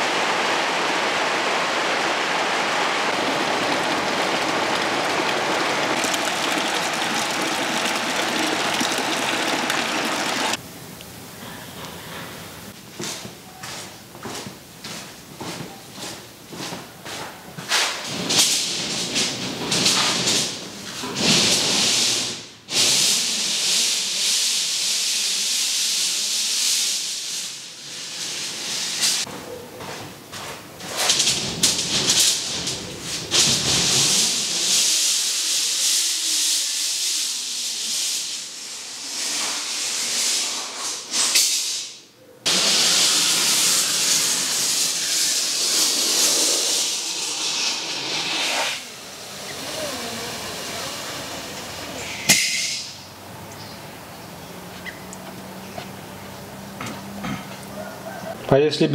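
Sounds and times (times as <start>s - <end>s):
rain falling loud hiss: 0.0s - 12.8s, 21.2s - 29.3s, 31.0s - 41.8s, 42.5s - 53.4s.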